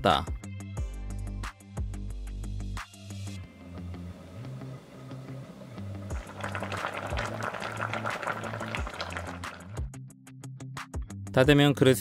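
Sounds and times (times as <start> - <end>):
background music with bass line: 0.0 - 12.0
stew bubbling in pot: 4.3 - 9.8.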